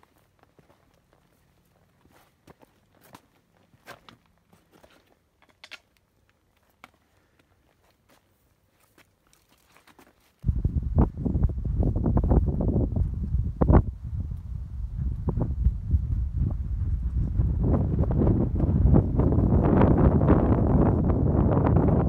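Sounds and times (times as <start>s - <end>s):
footsteps on rocky trail: 0.0s - 5.7s, 6.5s - 10.5s
wind buffeting on microphone: 10.4s - 22.0s.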